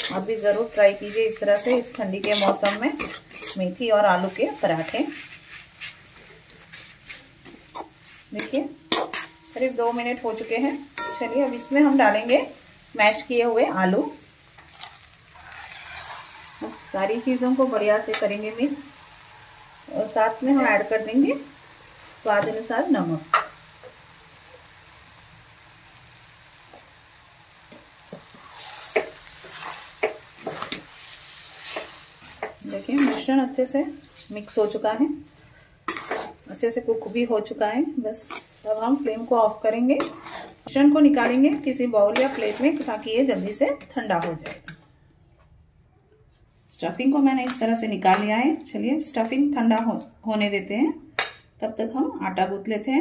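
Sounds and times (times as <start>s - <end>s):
spatula scraping metal pan: 0.0s - 5.4s, 6.8s - 12.5s, 14.6s - 21.5s, 28.4s - 34.3s, 35.9s - 36.5s, 39.5s - 44.0s
light sizzle: 0.0s - 45.0s, 46.7s - 53.0s.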